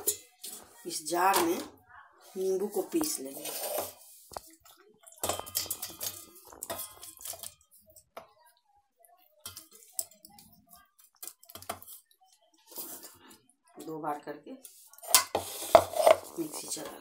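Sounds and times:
knocks and scrapes against steel jar: 0.0 - 1.7, 2.6 - 8.3, 14.9 - 17.0.

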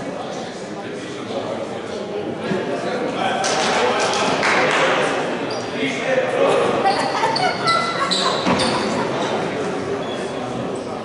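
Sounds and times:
voices echoing in sports hall: 0.0 - 11.0
shoes squeaking on court: 6.9 - 9.2.

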